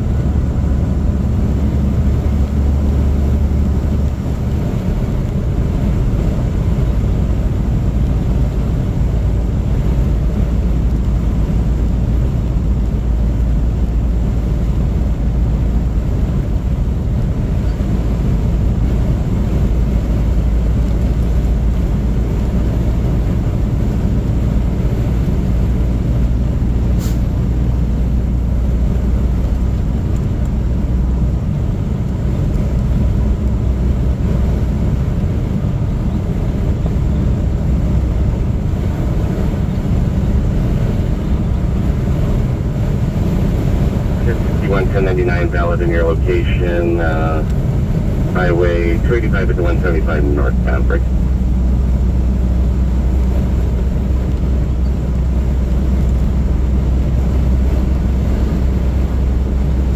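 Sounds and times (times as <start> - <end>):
car driving road noise: 0.0 - 59.9.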